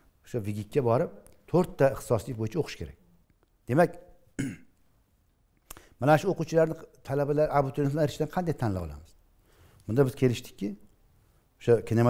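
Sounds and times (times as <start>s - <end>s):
man clearing his throat: 4.4s - 4.7s.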